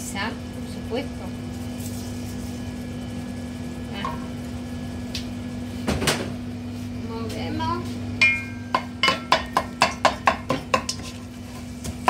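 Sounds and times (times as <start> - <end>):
meat frying in a pan: 0.0 - 5.7
steady kitchen hum: 0.0 - 12.0.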